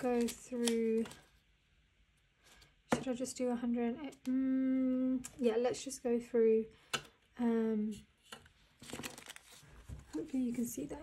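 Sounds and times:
banknotes rustling: 8.8 - 10.6.

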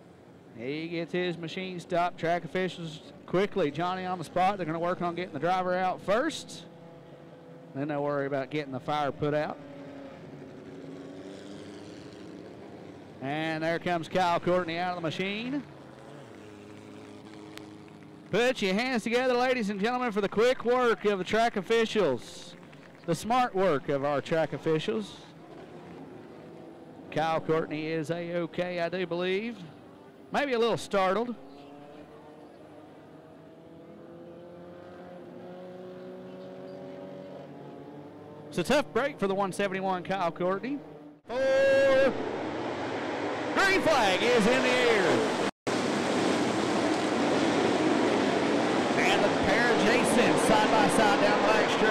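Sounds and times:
vehicle engines idling: 0.0 - 34.7, 37.6 - 51.9.

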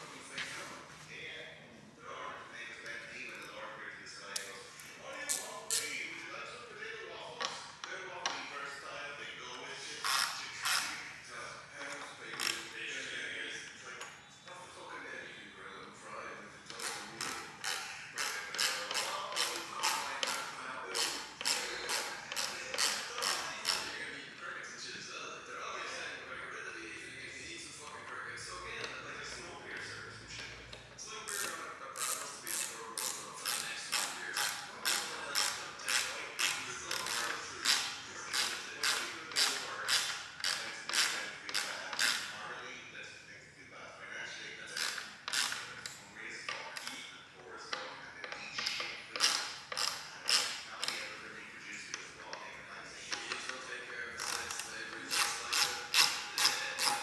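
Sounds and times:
hardware creaking and clicking: 7.1 - 8.7, 9.4 - 11.1, 11.8 - 14.7, 16.6 - 24.5, 27.8 - 42.4, 44.6 - 57.0
ratchet screwdriver ratcheting: 10.0 - 10.9, 12.3 - 12.8, 16.8 - 23.9, 31.3 - 42.3, 44.8 - 46.0, 48.4 - 51.1, 54.2 - 57.0.

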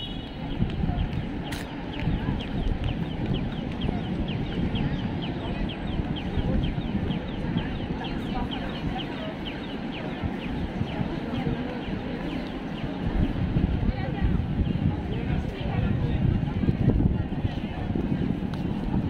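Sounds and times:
street and crowd noise: 0.0 - 19.0.

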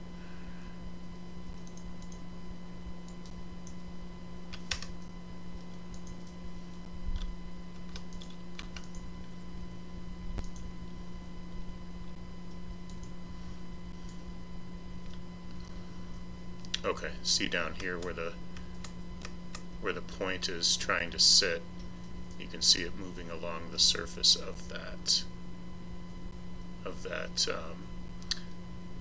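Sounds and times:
low electrical hum: 0.0 - 29.0
computer mouse clicks: 1.6 - 2.2, 4.5 - 6.4, 7.2 - 9.3, 10.4 - 10.7
keyboard clicks: 4.5 - 6.4, 7.2 - 9.1.

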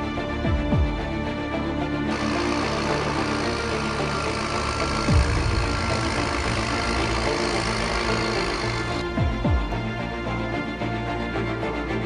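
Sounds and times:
tractor diesel engine running: 1.9 - 10.2.

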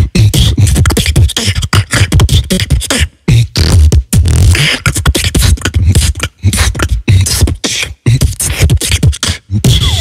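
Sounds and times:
beatboxing into a microphone: 0.0 - 10.0.

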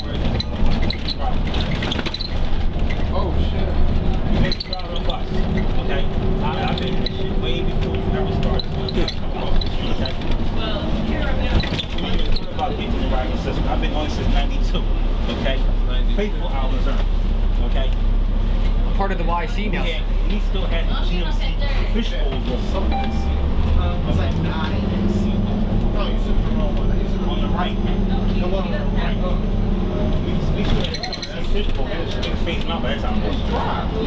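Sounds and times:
bus diesel engine running: 0.0 - 34.0
road rumble: 0.0 - 34.0.

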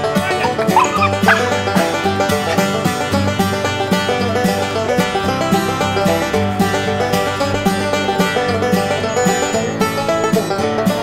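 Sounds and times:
puppy yipping: 0.0 - 2.6
background music with steady beat: 0.0 - 11.0.

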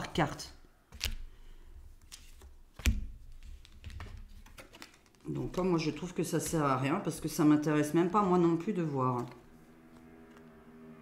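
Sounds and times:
cards clicking and tapping: 0.9 - 1.4, 2.0 - 6.8.

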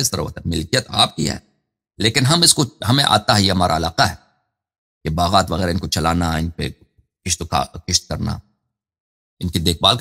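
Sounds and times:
man speaking: 0.0 - 4.2, 5.1 - 8.5, 9.4 - 10.0.

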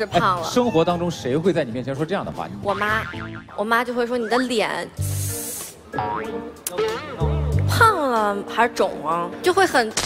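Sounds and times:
burst of hiss: 5.0 - 5.8.

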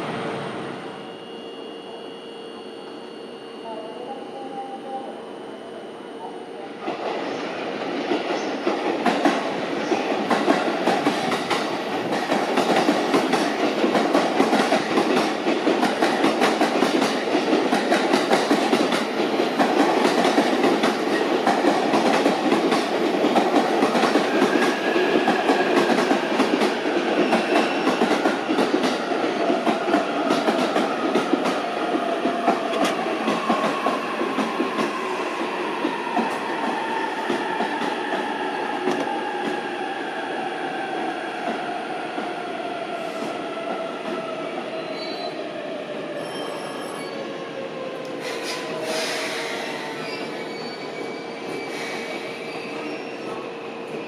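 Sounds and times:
train steady hum: 0.0 - 47.0.

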